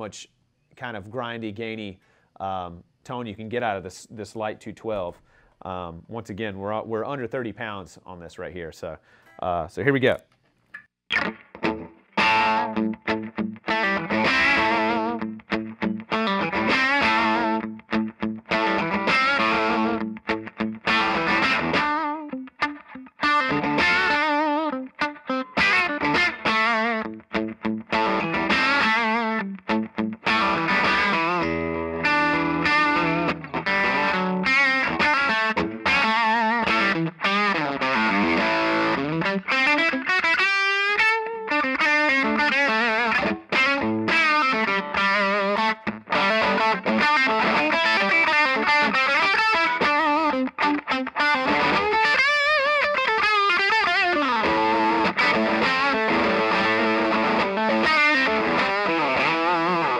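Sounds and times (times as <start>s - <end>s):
distorted electric guitar: 11.1s - 59.9s.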